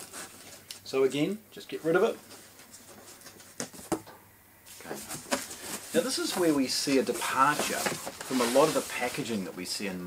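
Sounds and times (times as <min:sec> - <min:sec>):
cardboard rustling: 0:00.0 - 0:00.6, 0:02.0 - 0:04.0, 0:04.7 - 0:09.5.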